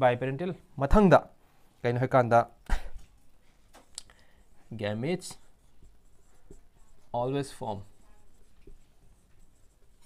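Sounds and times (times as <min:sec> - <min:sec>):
marker pen scratching on whiteboard: 0:04.4 - 0:10.0.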